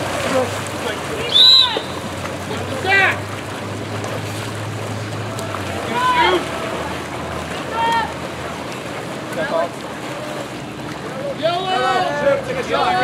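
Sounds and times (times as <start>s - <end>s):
swimmers splashing in pool: 0.0s - 13.0s
people shouting: 1.2s - 2.1s, 5.3s - 8.2s.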